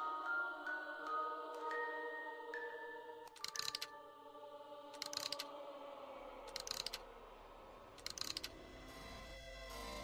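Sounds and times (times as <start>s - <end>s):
rapid mechanical clicking: 5.0s - 5.5s, 6.5s - 7.0s, 8.0s - 8.5s.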